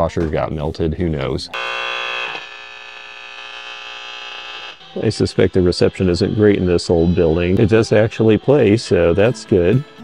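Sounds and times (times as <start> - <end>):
radio speaker buzzing hum: 1.6 - 8.0.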